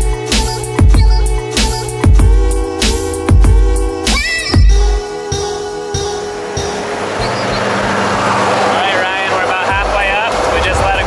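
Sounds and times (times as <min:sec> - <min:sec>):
plane engine and propeller drone: 0:04.3 - 0:11.0
voices talking: 0:08.5 - 0:11.0.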